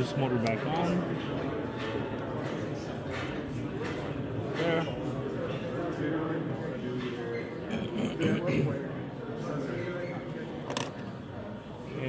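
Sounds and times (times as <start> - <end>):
indistinct background voices: 1.1 - 10.9.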